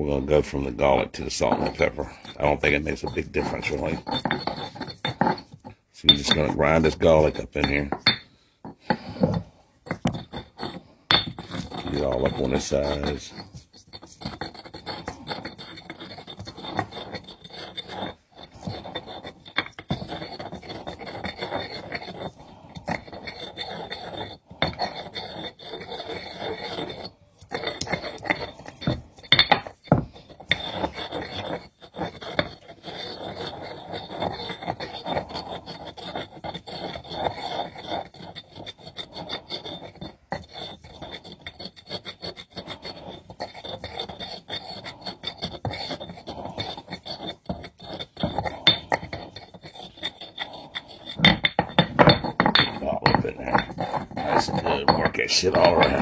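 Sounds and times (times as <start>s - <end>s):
pestle grinding in stone mortar: 0.0s - 56.0s.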